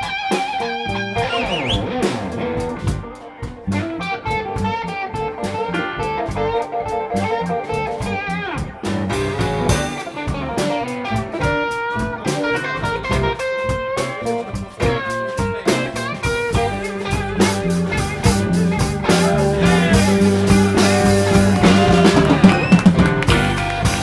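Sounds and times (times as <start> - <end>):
bass and drums: 0.0 - 24.0
electric guitar: 0.0 - 24.0
amplified harmonica: 0.6 - 2.2, 16.6 - 24.0.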